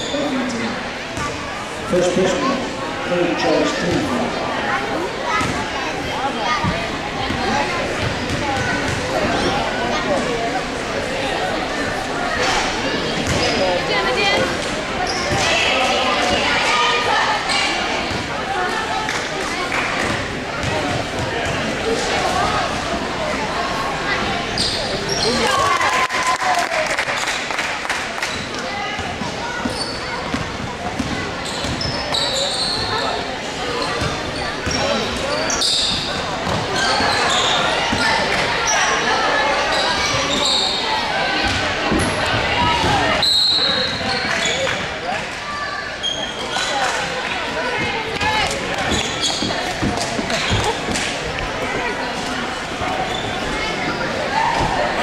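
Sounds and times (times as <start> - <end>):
crowd talking and calling out: 0.0 - 55.0
shoes squeaking on court: 12.5 - 15.7, 24.4 - 25.6, 28.3 - 39.0, 39.6 - 44.8, 46.0 - 47.0, 47.9 - 51.2, 52.6 - 55.0.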